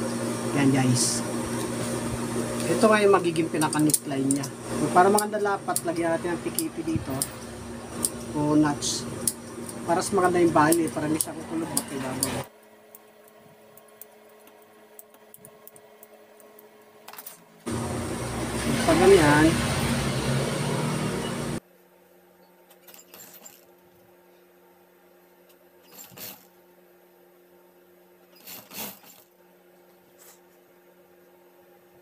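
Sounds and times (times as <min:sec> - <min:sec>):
steady motor hum: 0:00.0 - 0:16.8, 0:17.6 - 0:21.6
sewing machine stitching: 0:22.8 - 0:23.7, 0:25.8 - 0:26.5, 0:28.4 - 0:29.3.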